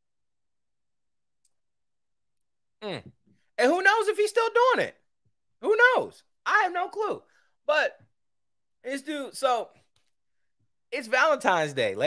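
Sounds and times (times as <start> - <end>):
man humming mm: 2.8 - 3.2.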